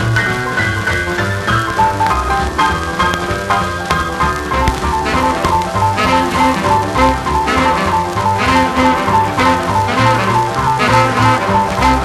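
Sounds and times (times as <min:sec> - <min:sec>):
rhythm and blues boogie band: 0:00.0 - 0:12.0.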